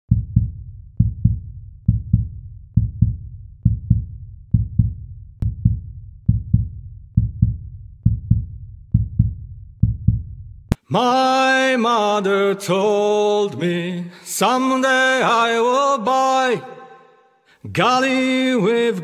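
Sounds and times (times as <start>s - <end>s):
heartbeat thumps: 0.1s - 10.7s.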